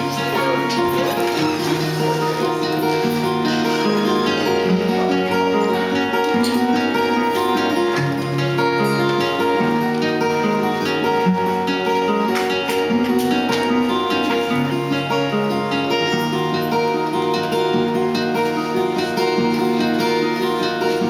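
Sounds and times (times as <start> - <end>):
acoustic guitars playing: 0.0 - 21.0.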